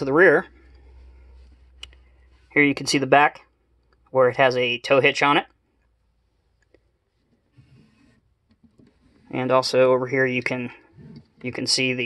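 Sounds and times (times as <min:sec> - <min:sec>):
faint handling noise: 0:05.7 - 0:12.0.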